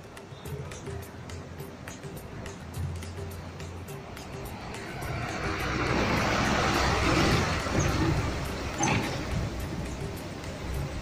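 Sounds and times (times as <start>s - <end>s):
bus engine running: 2.1s - 11.0s
wheels throwing up water spray: 4.0s - 11.0s.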